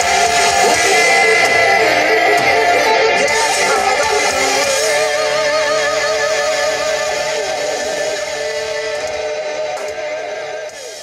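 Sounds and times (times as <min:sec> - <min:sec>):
rock band electric guitar chord: 0:00.0 - 0:11.0.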